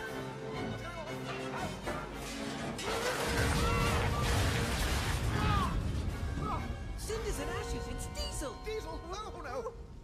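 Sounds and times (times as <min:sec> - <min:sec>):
dramatic orchestral music: 0:00.0 - 0:09.9.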